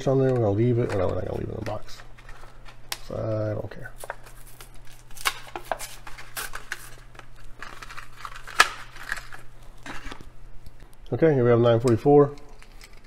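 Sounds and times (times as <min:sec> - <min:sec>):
plastic packaging crinkling and tearing: 0:00.0 - 0:11.0.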